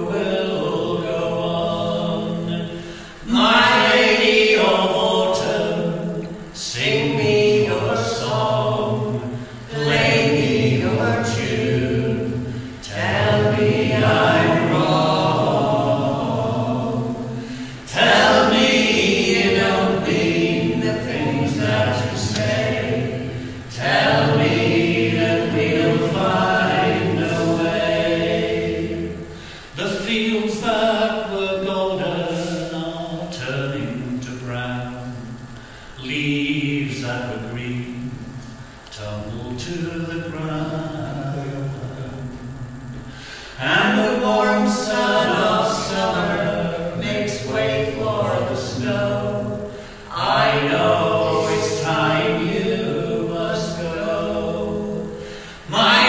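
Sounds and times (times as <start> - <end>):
group singing in harmony: 0.0 - 56.0.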